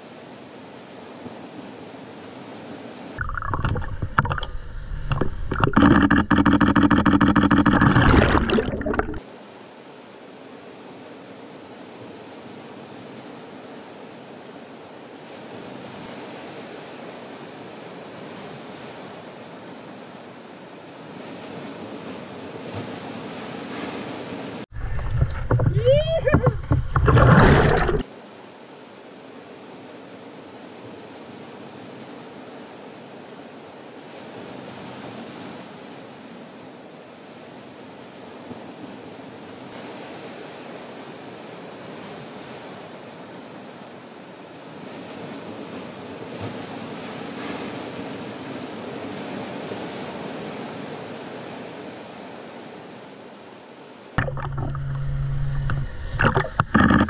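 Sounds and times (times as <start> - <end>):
ocean surf: 0.0 - 57.0
water rushing and splashing: 2.3 - 10.0, 21.0 - 28.4, 54.1 - 57.0
bubbling gurgles: 3.2 - 9.2, 24.7 - 28.0, 54.2 - 57.0.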